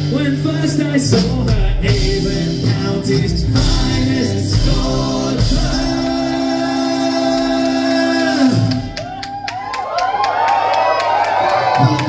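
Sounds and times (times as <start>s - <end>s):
upright bass: 0.0s - 9.0s
drums: 0.0s - 12.0s
people singing: 0.4s - 8.9s.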